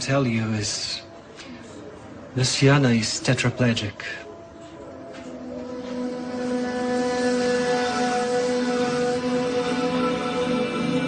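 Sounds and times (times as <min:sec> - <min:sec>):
droning music chord: 0:03.7 - 0:11.0.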